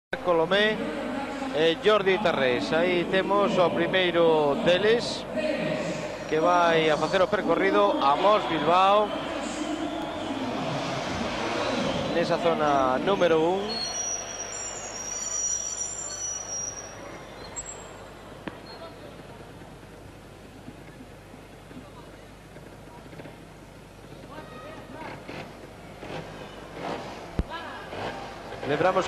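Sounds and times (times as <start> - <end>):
crowd noise: 0.1 - 29.0
high whistle-like tones: 11.6 - 18.0
motorcycle engine: 24.9 - 29.0.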